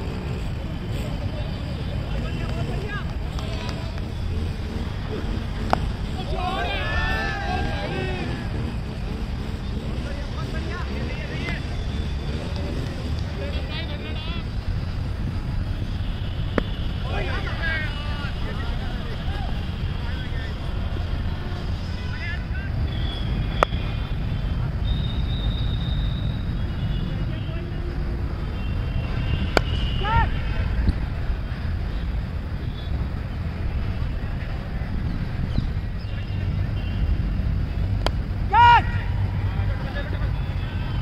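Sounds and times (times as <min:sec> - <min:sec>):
distant players shouting: 0:00.0 - 0:14.6, 0:15.2 - 0:31.2, 0:36.1 - 0:41.0.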